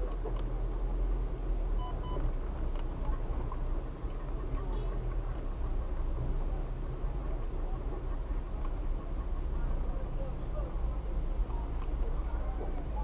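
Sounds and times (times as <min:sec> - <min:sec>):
car engine and road rumble: 0:00.0 - 0:13.0
high-pitched beeps: 0:01.8 - 0:02.2.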